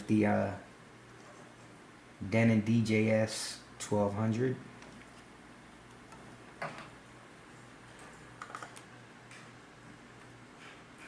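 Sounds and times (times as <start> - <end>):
low steady hum: 0.0 - 11.0
laptop clicks: 8.0 - 9.5.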